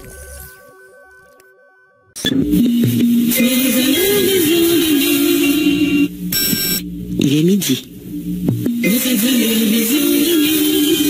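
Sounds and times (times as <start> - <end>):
intro music: 1.7 - 11.0.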